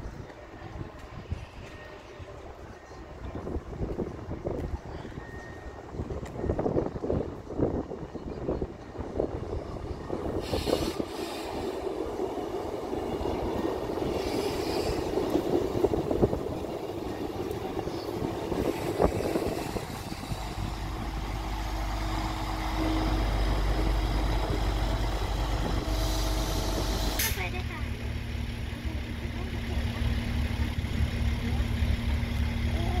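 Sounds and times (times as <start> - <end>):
train wheels rumbling on rails: 0.0 - 33.0
steady tones: 9.8 - 27.7.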